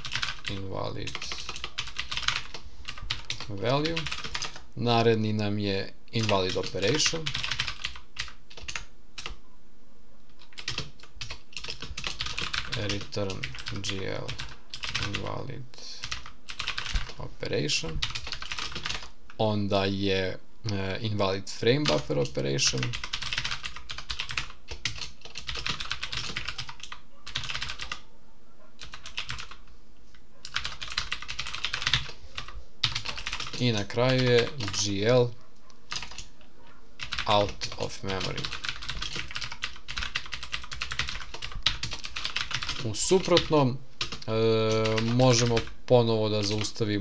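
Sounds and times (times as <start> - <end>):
typing on computer keyboard: 0.0 - 4.7, 6.2 - 9.4, 10.4 - 15.3, 16.0 - 17.2, 18.0 - 19.1, 21.8 - 28.0, 28.8 - 29.6, 30.4 - 34.9, 35.9 - 36.3, 37.0 - 45.8.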